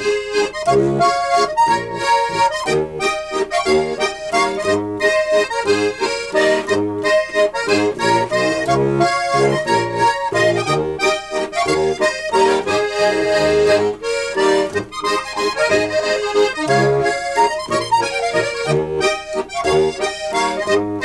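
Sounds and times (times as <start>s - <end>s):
accordion duet waltz: 0.0s - 21.0s.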